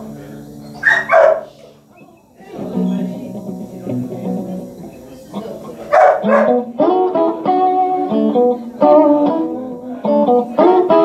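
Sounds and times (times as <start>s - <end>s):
guitar notes ringing: 0.0s - 11.0s
short two-part yelp: 0.8s - 1.4s.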